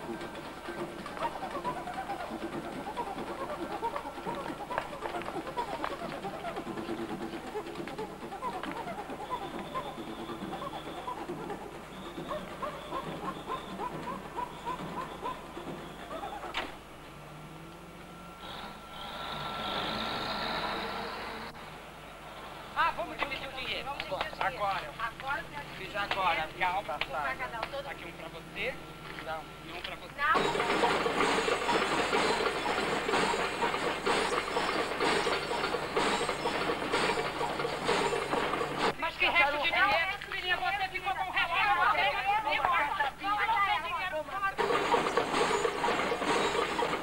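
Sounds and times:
train wheels clacking over rail joints: 0.0s - 16.7s, 30.4s - 39.0s, 44.6s - 47.0s
train rumble: 0.0s - 29.6s, 30.2s - 39.0s, 44.5s - 47.0s
truck engine humming: 0.0s - 39.2s.

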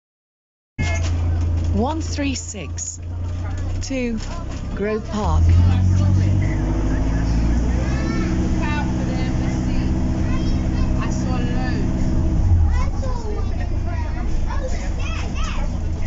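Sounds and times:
bus engine drone: 0.8s - 16.0s
faint passengers chattering: 0.8s - 16.0s.

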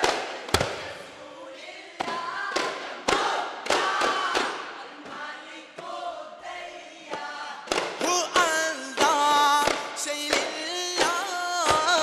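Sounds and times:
chorus of voices singing: 0.0s - 12.0s.

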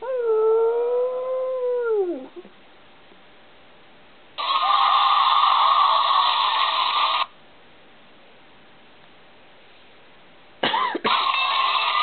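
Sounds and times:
burst of static noise: 4.4s - 7.4s.

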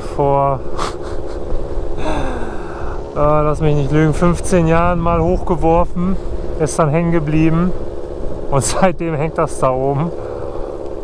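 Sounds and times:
wind noise on microphone: 3.4s - 6.6s
two-stroke scooter engine: 6.2s - 11.0s.

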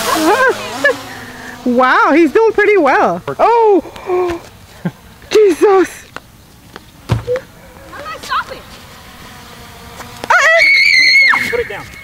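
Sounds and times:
person screaming high-pitched: 10.3s - 11.8s.

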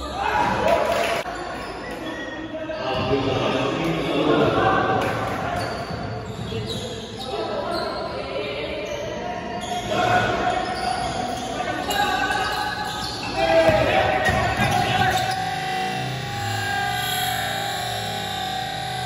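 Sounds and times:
people calling out: 9.8s - 19.0s.

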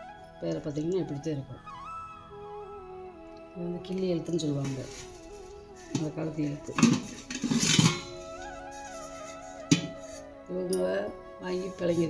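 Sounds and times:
metal pots knocking and scraping: 4.4s - 10.9s.

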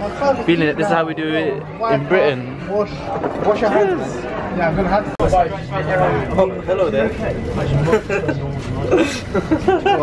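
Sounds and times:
man chuckling and laughing: 7.8s - 10.0s.

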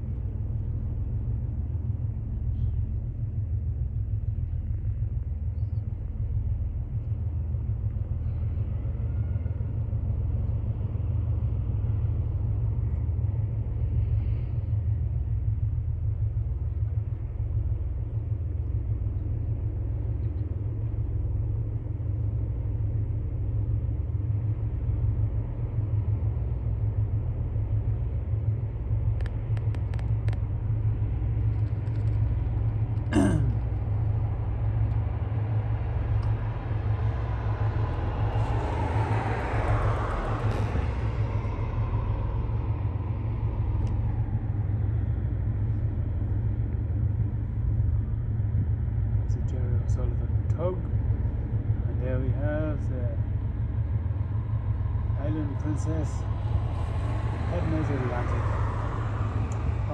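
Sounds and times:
low pulsing outdoor rumble: 0.0s - 59.9s
vehicle passing: 36.7s - 43.6s, 54.9s - 59.9s.

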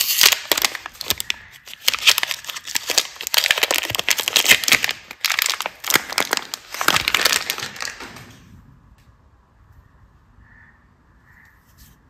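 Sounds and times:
wrapper crinkling: 0.0s - 8.3s.

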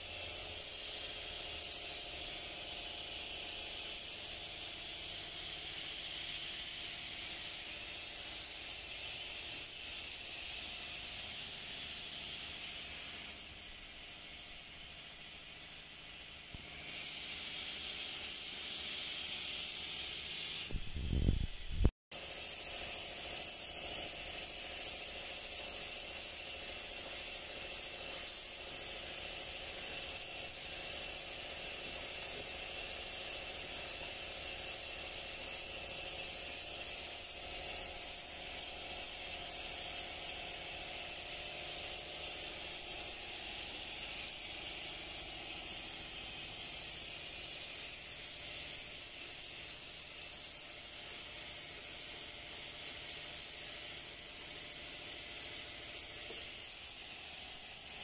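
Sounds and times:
paint spray gun hissing: 0.0s - 58.0s.

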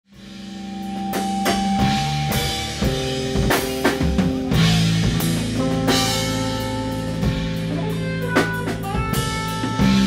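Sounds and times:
drum and cymbal hits: 0.1s - 10.0s
electric guitar holding notes: 0.3s - 10.0s.

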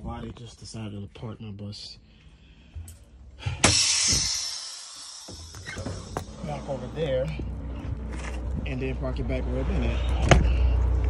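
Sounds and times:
compressed air hissing: 3.6s - 6.4s.

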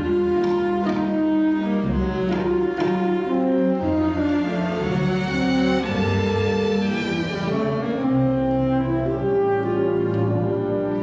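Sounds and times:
orchestra with bowed strings: 0.0s - 11.0s.

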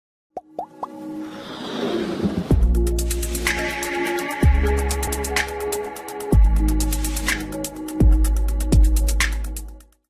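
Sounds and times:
rising plop sound effects: 0.4s - 1.0s
electronic music build-up: 0.6s - 9.5s.

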